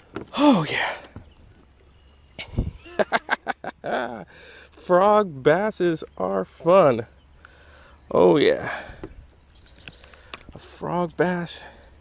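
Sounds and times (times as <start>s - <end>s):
man laughing: 2.4s - 4.4s.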